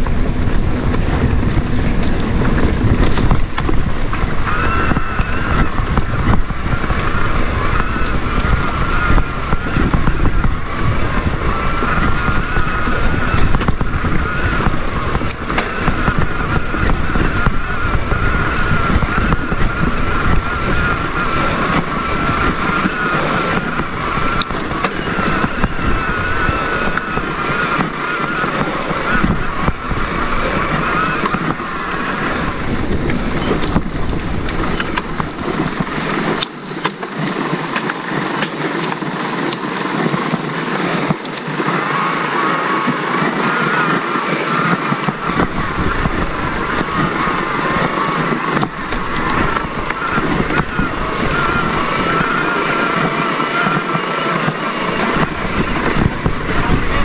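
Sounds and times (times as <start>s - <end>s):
bike rattles and clicks: 0.0s - 57.0s
bike rolling on dirt trail: 0.0s - 57.0s
wavering high whine: 0.0s - 57.0s
wind buffeting microphone: 0.0s - 57.0s.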